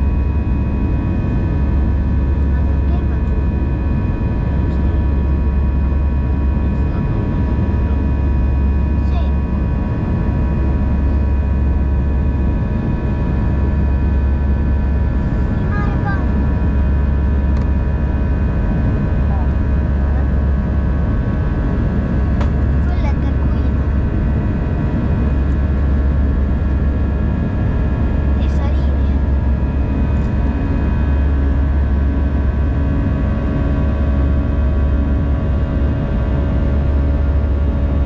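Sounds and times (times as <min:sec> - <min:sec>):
jet engine rumble: 0:00.0 - 0:38.0
steady whining tones: 0:00.0 - 0:38.0.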